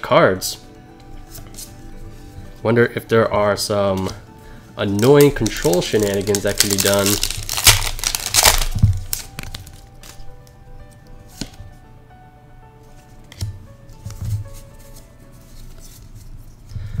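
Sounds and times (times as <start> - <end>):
soft background music: 0.0 - 17.0
cards clicking: 4.0 - 4.2, 4.8 - 10.3, 10.9 - 11.7, 13.2 - 16.2
foil wrapper crinkling and tearing: 4.8 - 10.2.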